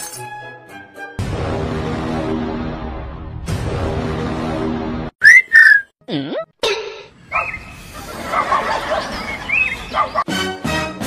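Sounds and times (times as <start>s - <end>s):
background music: 0.0s - 5.1s, 9.2s - 11.0s
loud whistle notes: 5.2s - 5.9s.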